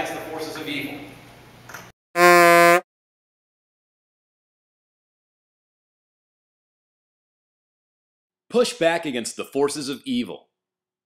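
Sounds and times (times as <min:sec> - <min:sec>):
game show buzzer: 0:02.2 - 0:02.8.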